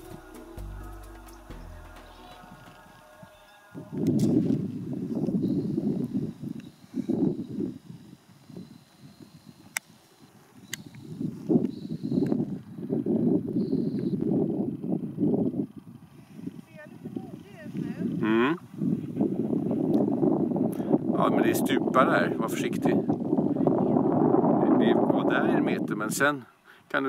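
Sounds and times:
background music: 0.0 - 4.3
wind buffeting microphone: 2.4 - 26.3.

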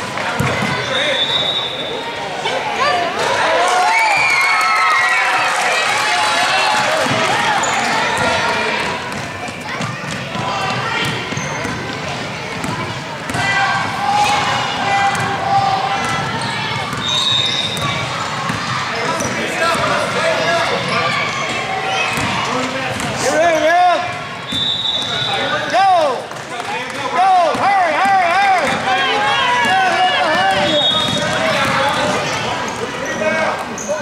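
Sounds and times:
voices echoing in gym: 0.0 - 34.0
basketball bouncing on court: 0.2 - 0.9, 6.8 - 14.5, 15.1 - 20.1, 20.8 - 23.2, 29.6 - 32.2
sneakers squeaking: 0.3 - 2.1, 6.9 - 25.9, 29.4 - 34.0.

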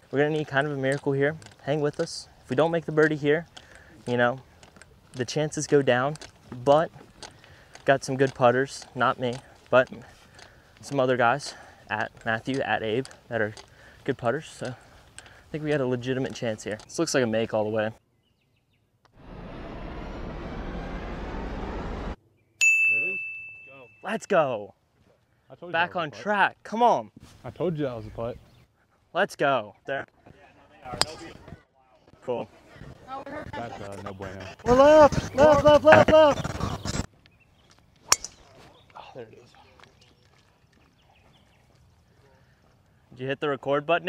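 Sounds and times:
short ring: 22.6 - 24.1
golf club striking ball: 30.9 - 31.2, 38.1 - 38.5.

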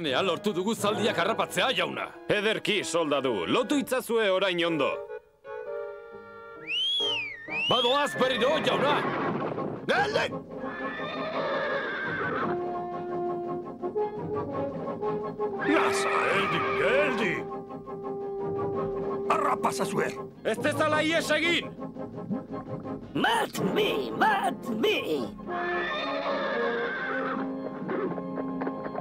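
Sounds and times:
cartoon horse whinnying: 7.1 - 9.3, 10.6 - 12.7, 15.6 - 17.2, 25.6 - 28.4
orchestral music: 12.4 - 29.0.

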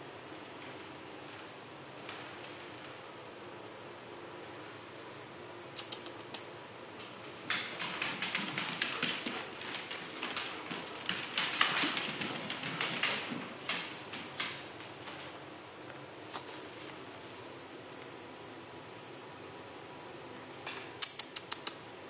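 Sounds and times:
puppy chewing and gnawing: 7.4 - 13.9, 15.9 - 17.2.

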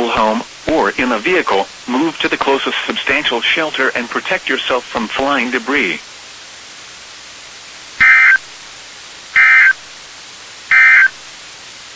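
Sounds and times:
radio hiss: 0.0 - 11.9
warbling two-tone data bursts: 8.0 - 8.4, 9.4 - 9.8, 10.7 - 11.2.

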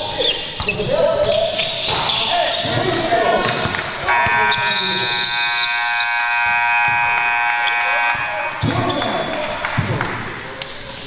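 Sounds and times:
scoreboard buzzer long tone: 4.1 - 8.4.

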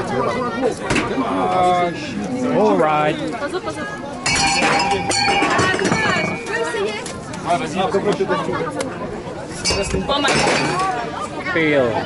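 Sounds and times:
people talking: 0.0 - 12.0
metal cans clattering: 4.3 - 6.5.

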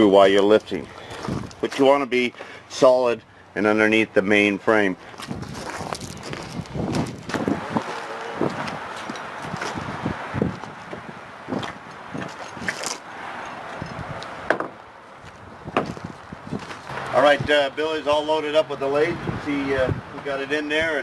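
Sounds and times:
boots on trailer floor: 0.8 - 2.5, 5.1 - 13.0, 13.7 - 17.1
steady rushing noise: 5.3 - 18.3
knocks and thuds: 14.5 - 14.8.

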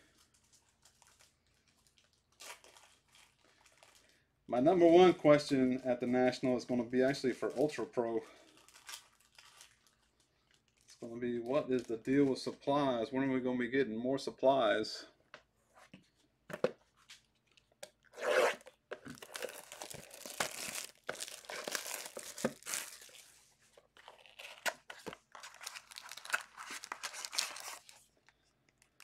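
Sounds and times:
foil wrapper tearing and crinkling: 0.8 - 4.1, 8.4 - 11.0, 18.6 - 23.4, 24.0 - 29.0.

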